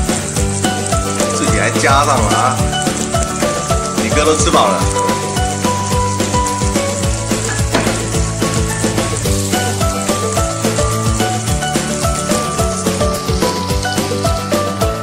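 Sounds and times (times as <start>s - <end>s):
background music with beat: 0.0s - 15.0s.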